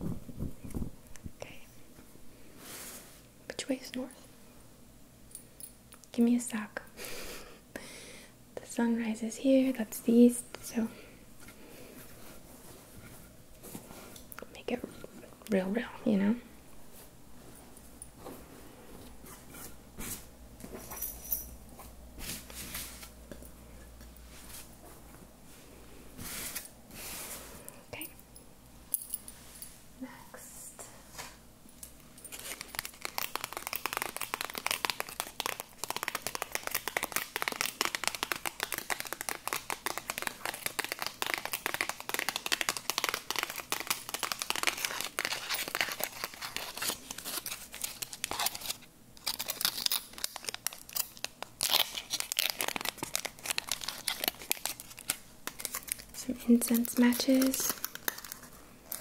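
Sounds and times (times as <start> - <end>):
packaging crinkling and tearing: 32.3 - 59.0.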